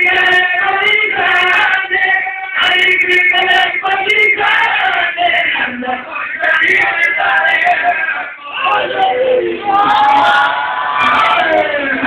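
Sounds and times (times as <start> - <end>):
voices singing a devotional song: 0.0 - 12.0.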